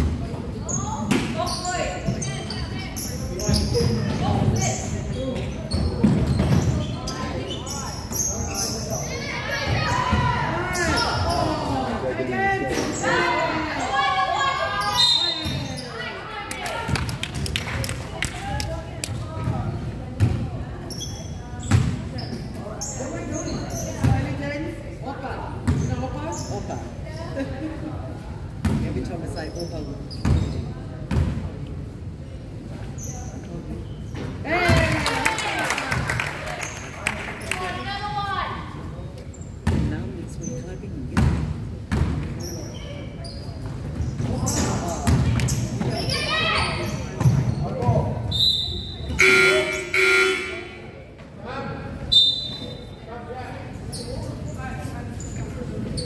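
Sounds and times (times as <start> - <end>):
echoing voices in hall: 46.0 - 55.8
buzzer tone: 49.1 - 50.7.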